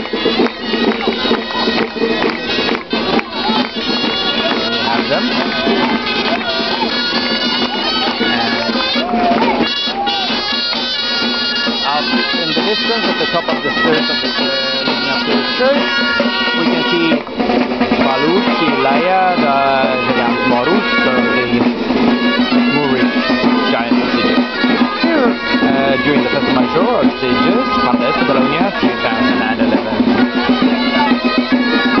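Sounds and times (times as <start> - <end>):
drums: 0.0 - 32.0
shawms playing a melody: 0.0 - 32.0.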